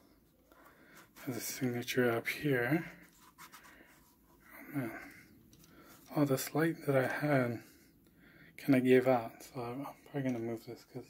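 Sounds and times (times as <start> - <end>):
man speaking: 1.2 - 3.1, 4.6 - 5.2, 6.1 - 7.8, 8.6 - 11.0
paper pages rustling: 2.8 - 4.4.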